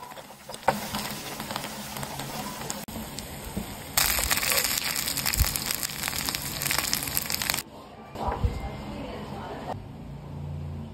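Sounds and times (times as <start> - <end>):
rice sizzling in a frying pan: 0.0 - 7.6.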